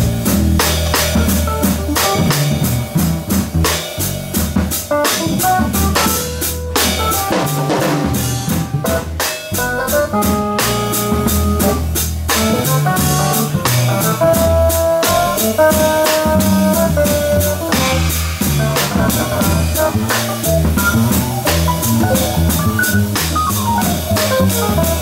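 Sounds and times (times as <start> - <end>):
electric keyboard chords: 0.0 - 25.0
jazz drumming with cymbals: 0.0 - 25.0
low bass line: 0.0 - 25.0.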